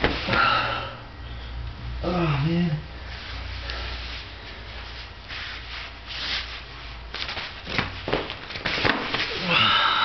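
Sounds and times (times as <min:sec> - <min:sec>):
body hitting cardboard floor: 0:07.2 - 0:09.3.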